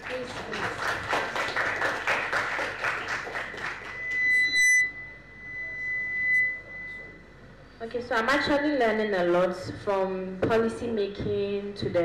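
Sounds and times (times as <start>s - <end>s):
audience applause: 0.0s - 4.1s
microphone feedback whine: 3.3s - 9.8s.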